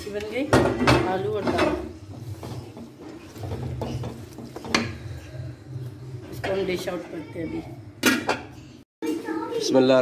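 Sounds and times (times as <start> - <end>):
spatula scraping metal pot: 0.8 - 7.2.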